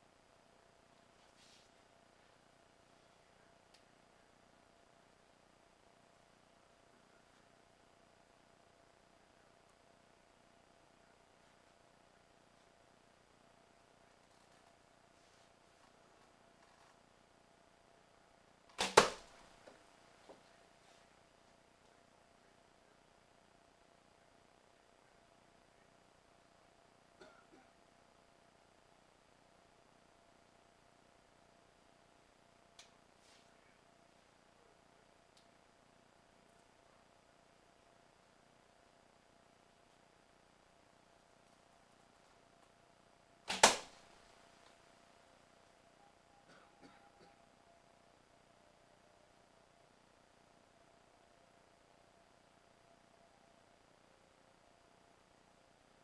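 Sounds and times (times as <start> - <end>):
arrow striking target: 18.8 - 19.5, 43.5 - 44.1.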